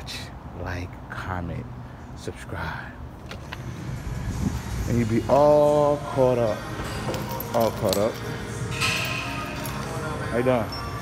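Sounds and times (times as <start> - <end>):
traffic rumbling: 0.0 - 11.0.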